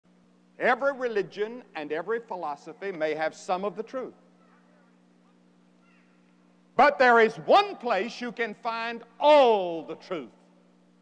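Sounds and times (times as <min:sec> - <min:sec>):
faint low hum: 0:00.1 - 0:11.0
man speaking: 0:00.6 - 0:04.2, 0:06.8 - 0:10.4.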